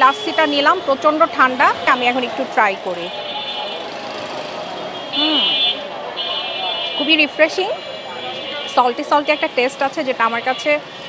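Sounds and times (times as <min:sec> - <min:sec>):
murmuring crowd voices: 0:00.0 - 0:11.0.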